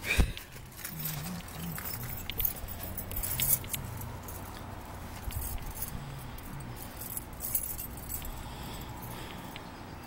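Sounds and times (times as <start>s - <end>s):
keys jangling: 0.4s - 9.6s.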